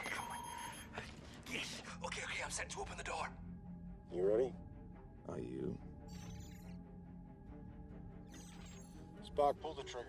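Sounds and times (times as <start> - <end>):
electronic console beeps: 0.0 - 1.0, 6.1 - 6.8, 8.3 - 9.1.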